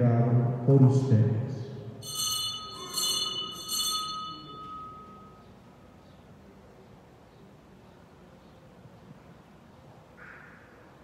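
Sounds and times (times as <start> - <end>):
altar bells ringing: 2.0 - 6.0.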